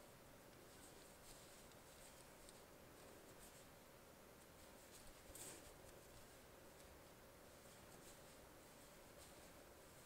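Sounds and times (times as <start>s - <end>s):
yarn rustling on knitting needles: 0.0s - 10.0s.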